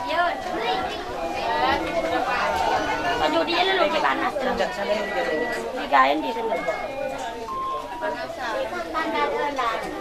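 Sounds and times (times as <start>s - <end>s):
faint steady high tone: 0.0s - 10.0s
overlapping crowd chatter: 0.0s - 10.0s.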